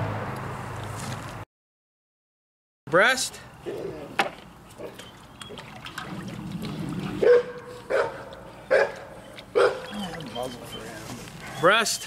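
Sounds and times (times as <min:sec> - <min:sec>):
dog barking: 0:07.2 - 0:10.0.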